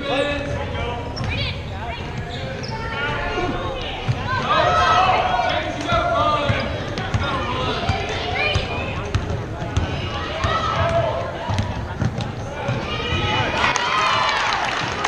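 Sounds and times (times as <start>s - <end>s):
people shouting in gym: 2.7s - 9.0s, 9.8s - 14.8s.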